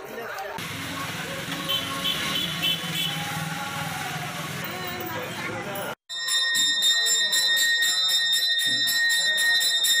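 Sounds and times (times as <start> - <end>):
hand bell ringing: 5.8 - 10.0.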